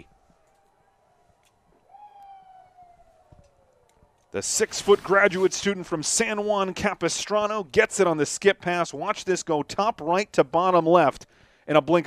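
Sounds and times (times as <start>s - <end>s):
distant siren wail: 0.0s - 5.5s.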